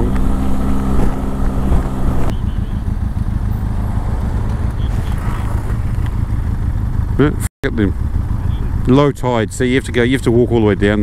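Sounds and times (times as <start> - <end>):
wind noise on microphone: 0.0 - 2.3
motorcycle engine running: 0.0 - 11.0.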